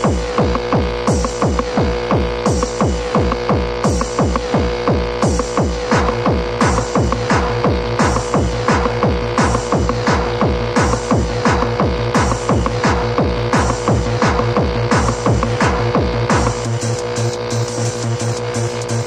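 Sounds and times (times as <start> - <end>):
techno kick drum beat: 0.0 - 19.0.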